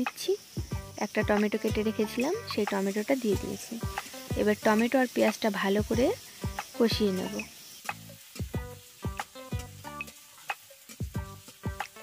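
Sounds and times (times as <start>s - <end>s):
food sizzling in oil: 0.0s - 12.0s.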